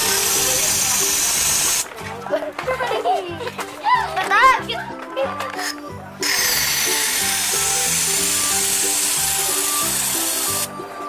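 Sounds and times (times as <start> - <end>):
pressure sprayer hissing: 0.0 - 1.8, 6.2 - 10.7
background music: 0.0 - 11.0.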